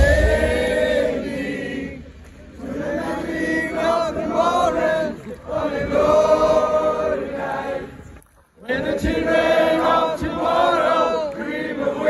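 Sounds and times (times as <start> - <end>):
crowd singing together: 0.0 - 12.0.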